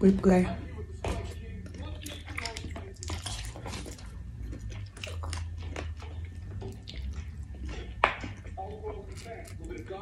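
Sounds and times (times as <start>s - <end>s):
chewing with small crunches: 0.6s - 10.0s.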